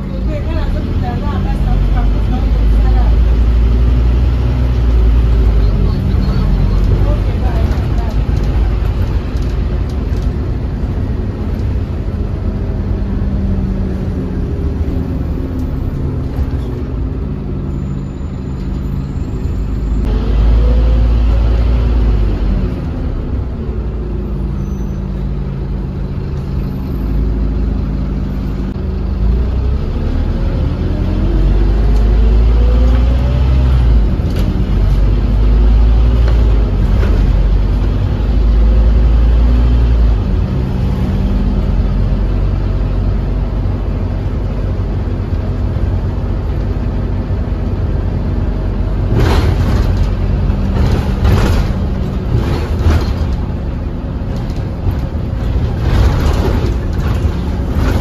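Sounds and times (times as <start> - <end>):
bus engine rumbling: 0.0 - 58.0.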